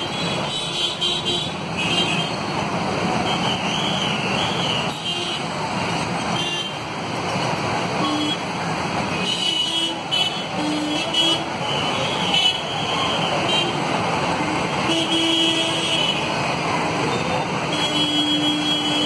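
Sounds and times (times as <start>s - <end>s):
traffic passing close by: 0.0s - 19.0s.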